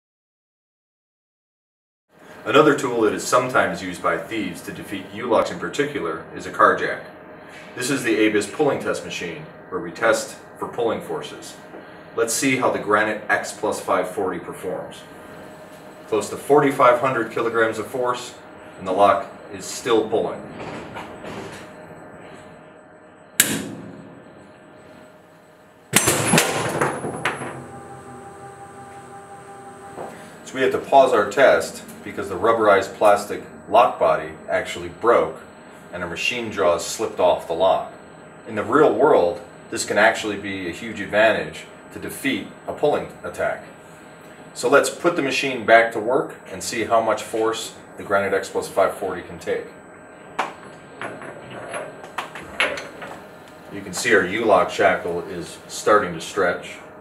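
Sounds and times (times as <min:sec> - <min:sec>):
low machine hum: 0:02.2 - 0:57.0
lock breaking with loud bang: 0:25.9 - 0:27.6.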